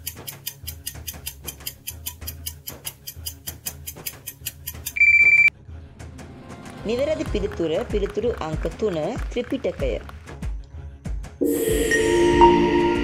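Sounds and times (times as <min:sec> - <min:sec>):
clock-like timer ticking: 0:00.0 - 0:05.5
loud electronic beep: 0:05.0 - 0:05.5, 0:11.4 - 0:13.0
low background music: 0:05.5 - 0:13.0.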